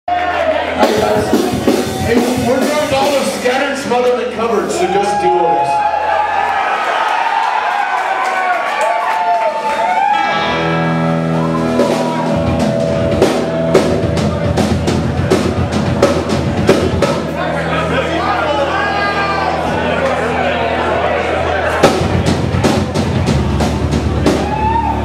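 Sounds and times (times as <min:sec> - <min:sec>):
drum kit hits: 0:00.8 - 0:04.2, 0:10.5 - 0:17.6, 0:21.7 - 0:25.0
guitar and bass chord: 0:10.2 - 0:25.0.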